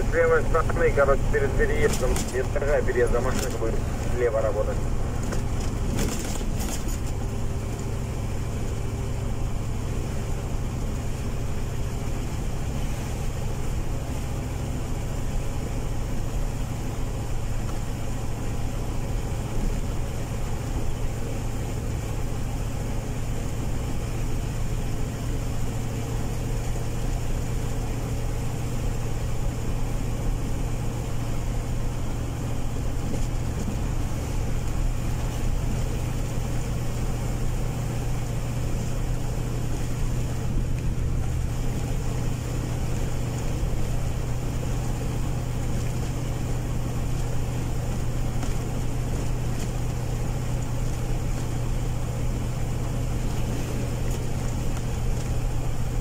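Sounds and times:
car engine hum: 0:00.0 - 0:56.0
road and tyre noise: 0:00.0 - 0:56.0.

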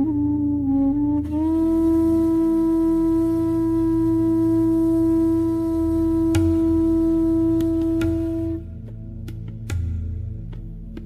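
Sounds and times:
flute holding a long note: 0:00.0 - 0:08.9
low steady drone: 0:00.0 - 0:11.0.

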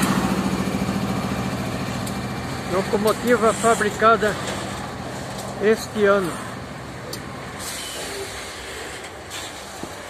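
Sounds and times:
train wheels rolling on rail: 0:00.0 - 0:10.0.

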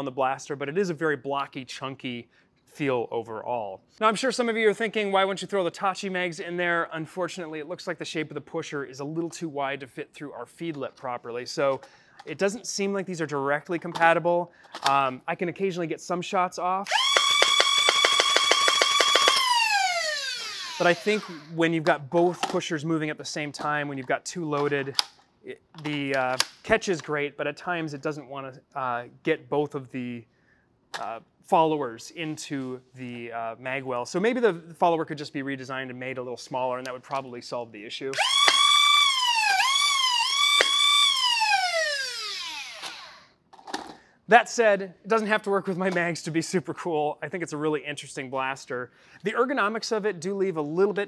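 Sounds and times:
flywheel motors whining: 0:16.9 - 0:21.5, 0:38.2 - 0:43.2.

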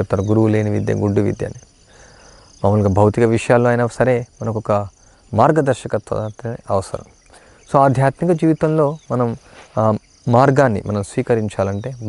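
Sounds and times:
man talking: 0:00.0 - 0:01.6, 0:02.6 - 0:07.1, 0:07.7 - 0:12.0.

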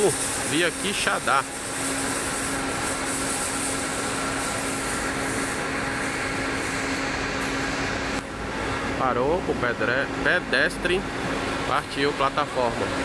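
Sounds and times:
coach engine and air conditioning: 0:00.0 - 0:13.0.

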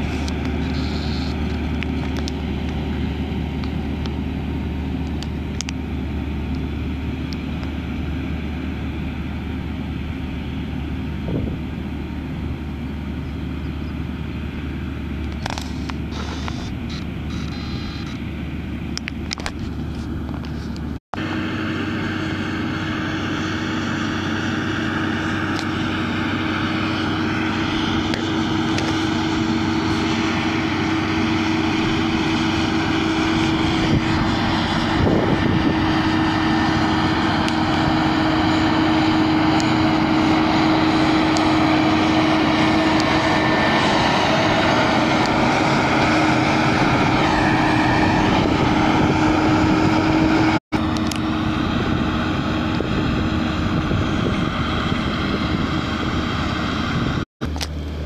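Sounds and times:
tractor engine under load: 0:00.0 - 0:58.0.

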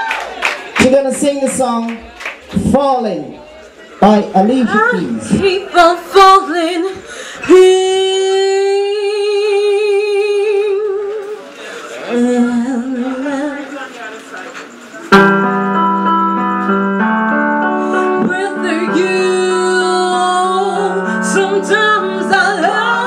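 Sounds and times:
woman singing: 0:04.8 - 0:11.4, 0:12.1 - 0:13.7, 0:18.0 - 0:23.0
karaoke backing track chords: 0:15.0 - 0:23.0.

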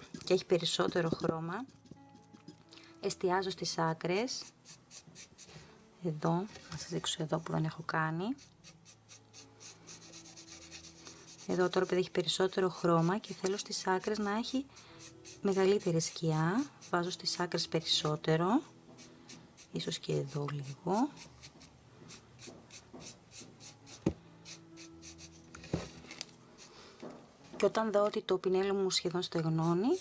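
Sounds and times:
dry paintbrush bristle strokes: 0:08.4 - 0:11.8, 0:19.3 - 0:25.4.

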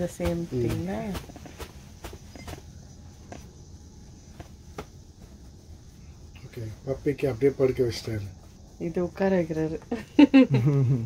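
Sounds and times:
cloth rustling: 0:00.0 - 0:03.6, 0:04.2 - 0:08.7
low steady hum: 0:00.0 - 0:11.0.

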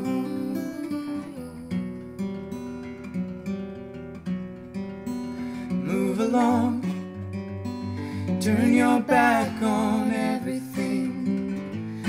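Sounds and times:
acoustic guitar strumming chords: 0:00.0 - 0:12.0.

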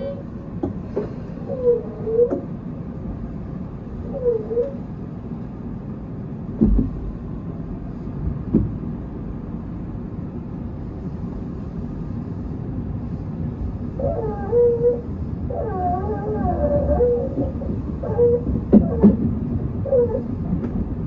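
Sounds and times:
electric train rumbling: 0:00.0 - 0:21.0
train wheel knocks: 0:06.6 - 0:07.1, 0:08.4 - 0:08.8, 0:17.4 - 0:19.5.

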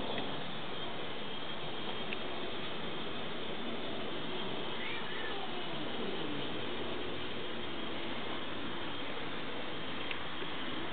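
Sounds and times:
steady hiss: 0:00.0 - 0:10.9
cat meowing faintly: 0:04.7 - 0:06.1.

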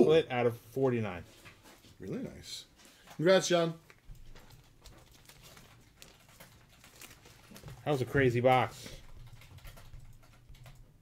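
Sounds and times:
cardboard packaging rustling: 0:03.8 - 0:08.7.

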